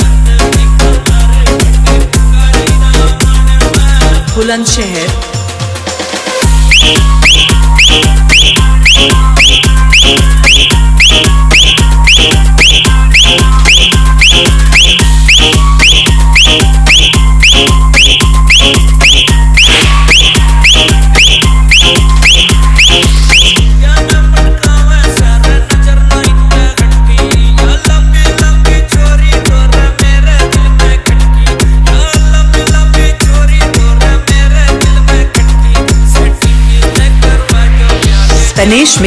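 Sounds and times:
dance music mix: 0.0 - 39.0
heavy deep bass kick: 6.4 - 35.0
falling whistle-like high note: 6.6 - 23.7.

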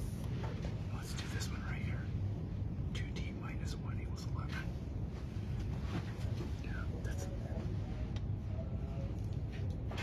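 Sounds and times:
low room rumble: 0.0 - 10.0
students whispering and talking: 0.4 - 5.1, 5.9 - 9.9.

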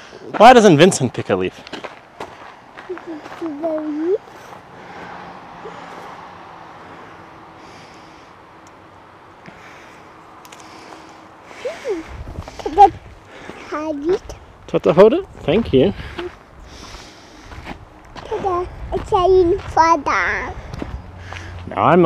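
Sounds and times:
toddler vocal sounds: 2.9 - 4.4, 11.6 - 13.0, 13.6 - 14.4, 18.2 - 20.6.

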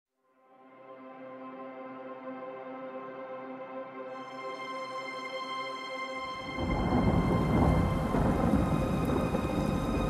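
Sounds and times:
thunder and rain rumble: 6.4 - 10.0.

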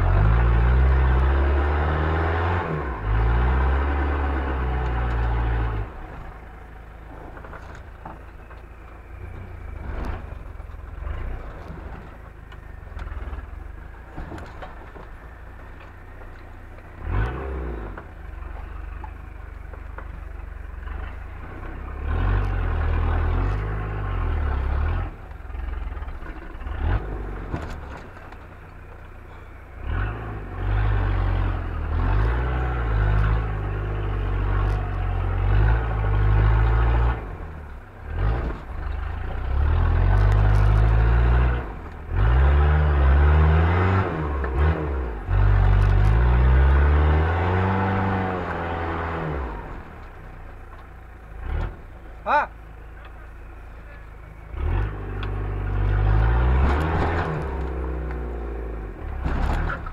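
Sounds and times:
off-road engine revving: 0.0 - 59.9.

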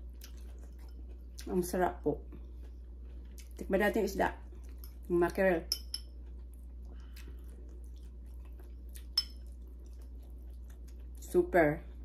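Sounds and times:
soft chewing: 0.0 - 12.0
steady low hum: 0.0 - 12.0.

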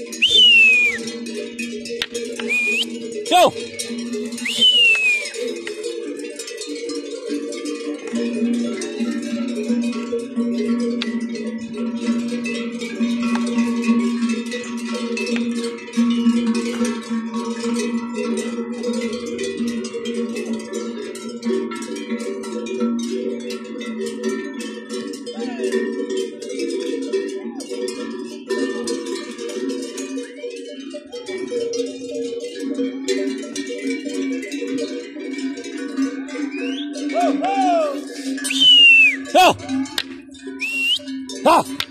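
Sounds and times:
cattle bells clanking: 0.0 - 41.9.

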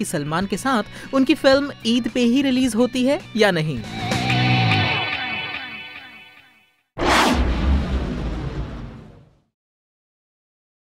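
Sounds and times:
whoosh falling in pitch: 7.0 - 9.2
deep rumbling boom: 7.0 - 9.5.

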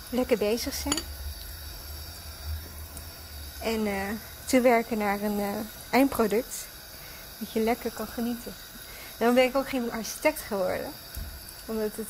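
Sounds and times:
faint even hiss: 0.0 - 12.0
low steady hum: 0.0 - 12.0.

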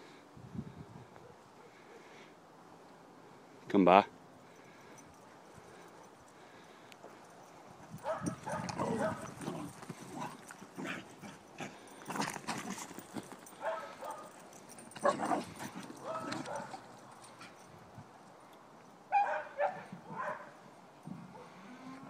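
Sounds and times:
hoof thuds and knocks: 7.1 - 17.6
cattle and dog calls: 8.0 - 14.3, 14.9 - 17.6, 19.1 - 20.5, 21.3 - 22.0.

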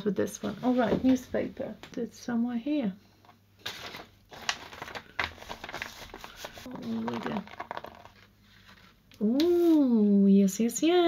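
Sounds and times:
newspaper rustling and crinkling: 3.6 - 9.0.

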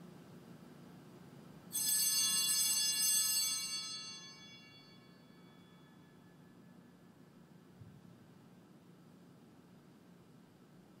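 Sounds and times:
small bell ringing: 1.7 - 6.7.

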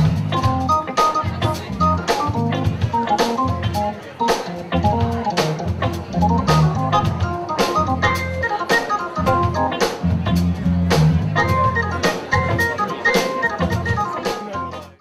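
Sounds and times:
drum kit beat: 0.0 - 15.0
held keyboard chords: 0.0 - 15.0
live band playing: 0.0 - 15.0.

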